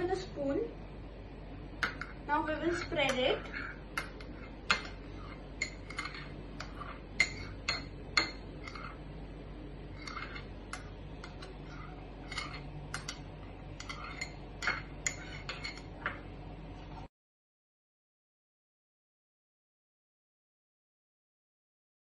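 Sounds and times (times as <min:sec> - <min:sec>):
spoon clinking in glass bowl: 0:05.6 - 0:09.0, 0:13.8 - 0:15.9.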